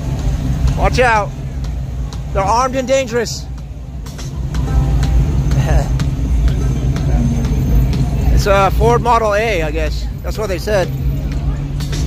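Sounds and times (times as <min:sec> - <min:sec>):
background music: 0:00.0 - 0:12.0
car engine rumbling: 0:00.0 - 0:12.0.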